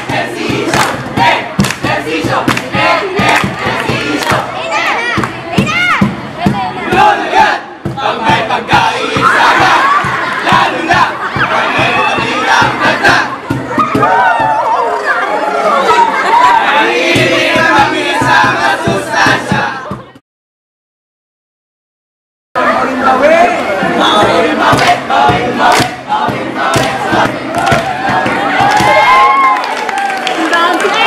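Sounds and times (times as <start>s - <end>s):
crowd shouting and cheering: 0.0s - 20.2s, 22.6s - 31.0s
whoops rising in pitch: 13.8s - 15.8s, 28.8s - 30.2s.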